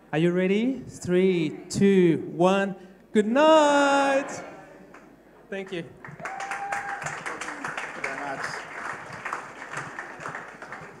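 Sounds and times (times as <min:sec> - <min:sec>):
audience applauding: 0:06.0 - 0:11.0.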